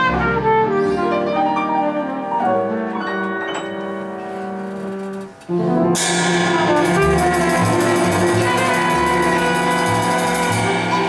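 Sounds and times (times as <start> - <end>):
jazz quartet chord: 0.0 - 11.0
cymbal splash: 6.0 - 11.0.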